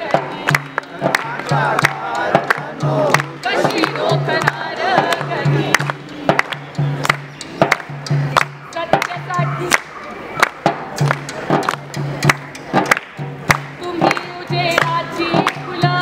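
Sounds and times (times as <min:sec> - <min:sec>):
frame drum struck by hand: 0:00.0 - 0:09.6, 0:10.6 - 0:16.0
group singing: 0:00.0 - 0:10.5, 0:13.8 - 0:16.0
handclaps: 0:00.0 - 0:16.0.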